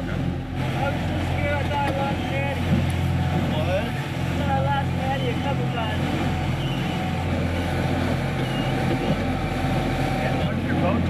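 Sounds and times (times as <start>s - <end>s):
boat engines droning: 0.0s - 11.0s.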